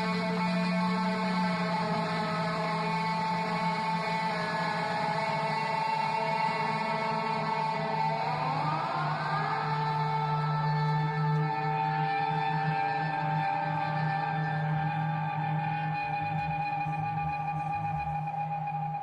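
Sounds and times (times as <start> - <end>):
electric guitar drone: 0.0 - 19.0.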